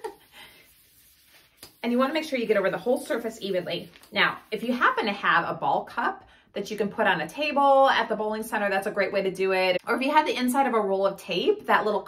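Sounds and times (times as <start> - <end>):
woman speaking: 1.7 - 12.0.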